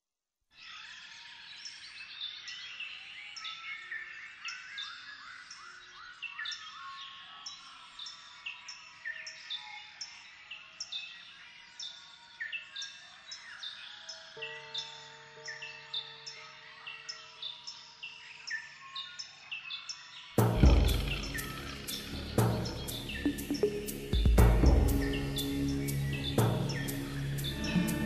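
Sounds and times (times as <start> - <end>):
chorus of bird chirps: 0.5 - 28.0.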